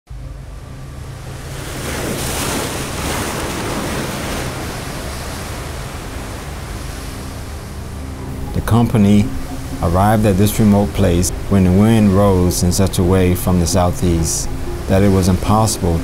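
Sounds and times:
waves washing against rocks: 1.2s - 7.9s.

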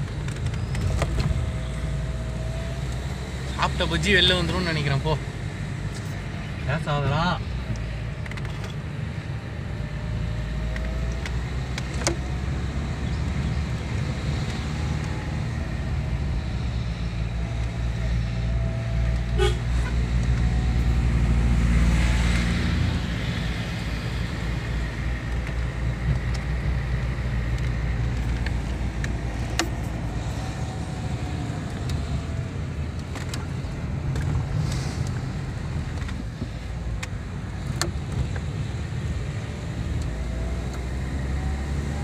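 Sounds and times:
vehicle engine and road noise: 0.0s - 42.0s.

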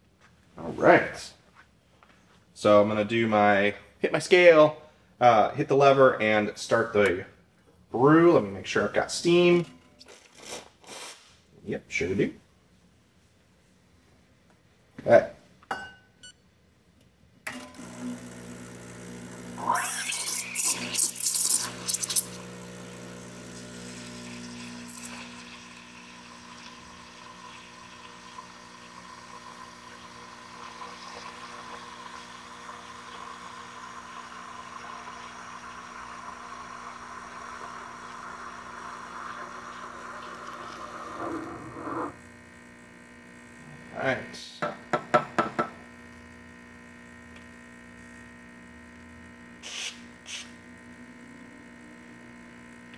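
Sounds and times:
espresso machine pump humming: 17.5s - 52.9s
steam wand hissing: 49.6s - 50.6s.

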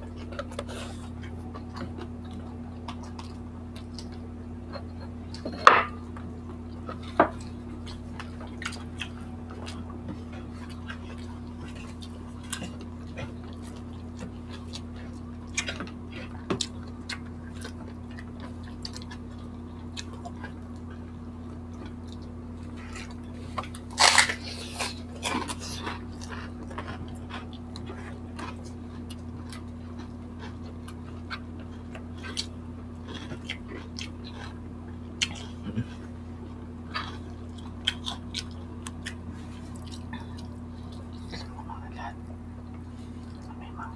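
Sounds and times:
people chewing food: 0.0s - 43.9s
steady low hum: 0.0s - 43.9s
food crackling as picked apart: 22.8s - 31.1s.

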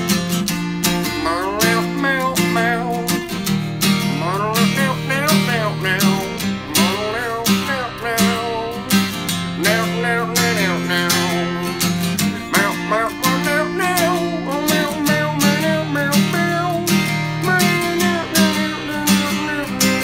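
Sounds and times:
acoustic guitar strumming: 0.0s - 20.0s
person singing wordless melody: 0.9s - 20.0s.

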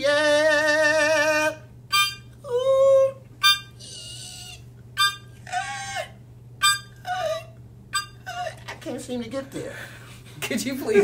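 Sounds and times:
harmonica blasts with bending notes: 1.1s - 2.4s, 3.4s - 8.5s.

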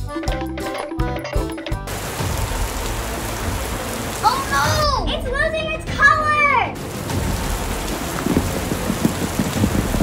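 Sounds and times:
children's music: 0.0s - 1.9s
heavy rainfall hiss: 1.9s - 5.6s, 6.7s - 10.0s
child exclaiming: 4.2s - 6.8s.

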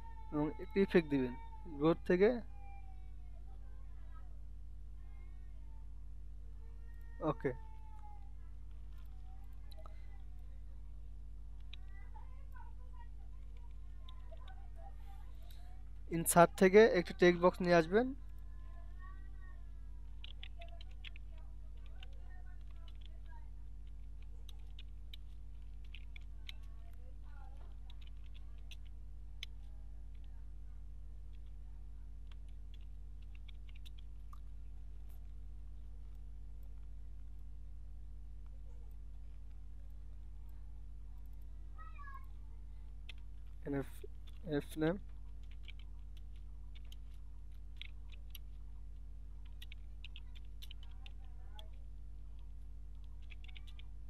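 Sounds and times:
low electrical hum: 0.0s - 54.0s
man's voice saying a syllable: 7.2s - 7.6s.

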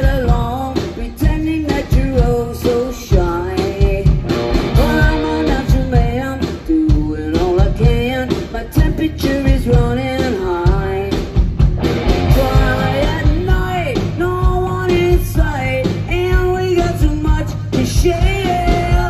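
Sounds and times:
woman singing: 0.0s - 11.4s, 12.3s - 19.0s
drum kit: 0.0s - 19.0s
electric guitars: 0.0s - 19.0s.

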